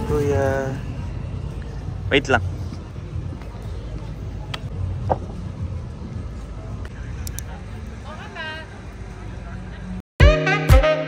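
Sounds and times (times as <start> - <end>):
faint distant voices: 0.0 - 10.0
steady low rumble: 0.0 - 10.0.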